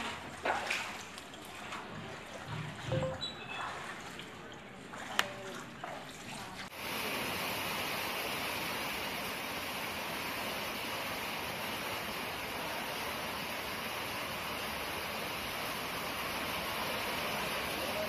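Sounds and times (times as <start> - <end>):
heavy rain pouring: 6.7 - 18.0.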